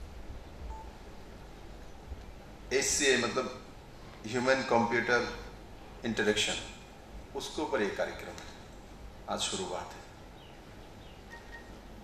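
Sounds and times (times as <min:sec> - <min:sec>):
low room hum: 0:00.0 - 0:12.0
short faint beep: 0:00.7 - 0:00.9, 0:11.3 - 0:11.8.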